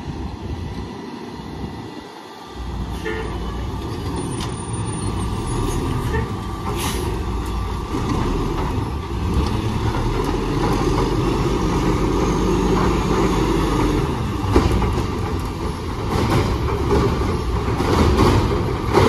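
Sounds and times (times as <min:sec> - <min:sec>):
garbage truck engine running: 0:02.6 - 0:19.0.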